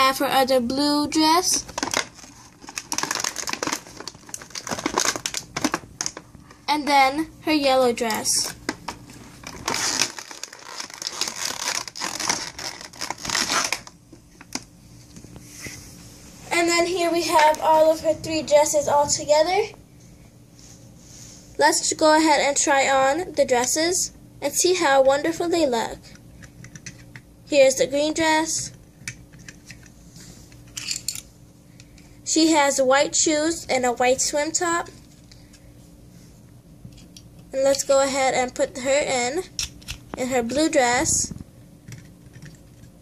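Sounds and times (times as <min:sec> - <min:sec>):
plastic packaging crinkling: 0:01.6 - 0:06.4, 0:08.2 - 0:14.7.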